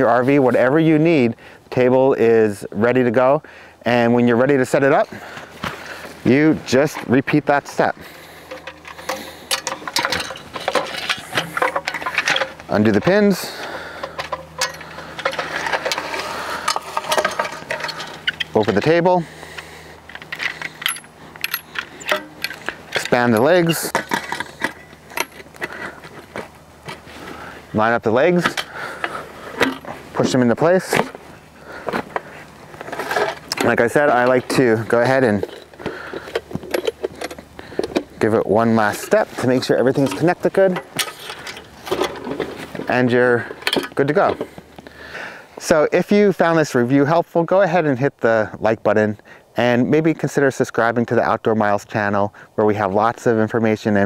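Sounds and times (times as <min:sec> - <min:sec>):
metal table legs clinking: 0:08.5 - 0:13.1, 0:14.0 - 0:18.9, 0:20.1 - 0:25.5
metal table clicks and rattles: 0:20.1 - 0:25.5.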